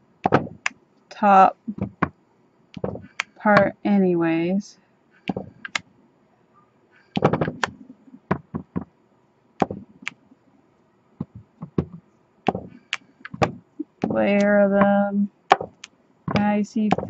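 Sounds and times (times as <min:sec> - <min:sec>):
stamp block tapping on table: 0:02.8 - 0:03.2, 0:07.2 - 0:07.7, 0:11.2 - 0:14.2, 0:15.5 - 0:17.0.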